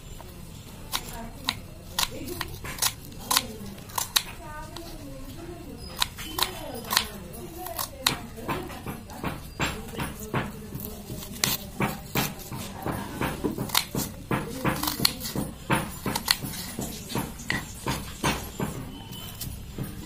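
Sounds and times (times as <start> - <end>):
knife chopping on wooden board: 0.9 - 4.9, 5.8 - 20.0.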